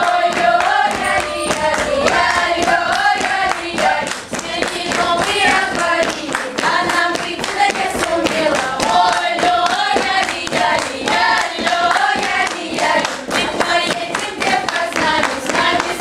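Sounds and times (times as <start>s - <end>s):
choir singing a dance song: 0.0s - 16.0s
rhythmic clapping: 0.0s - 16.0s.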